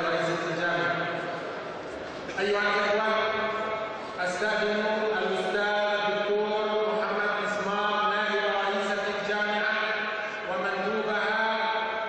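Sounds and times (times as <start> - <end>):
man chanting over loudspeaker: 0.0 - 1.3, 2.3 - 12.0.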